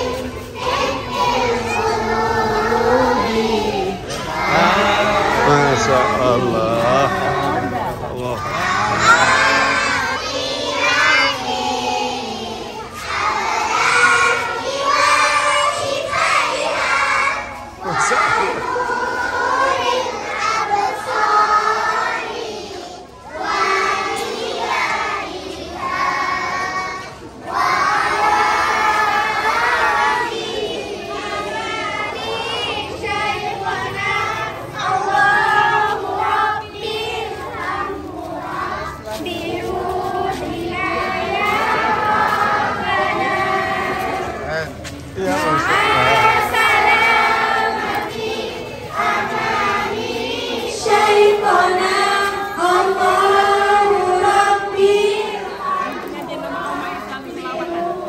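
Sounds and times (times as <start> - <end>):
children chanting in unison: 0.0 - 58.0
crowd hubbub: 0.0 - 58.0.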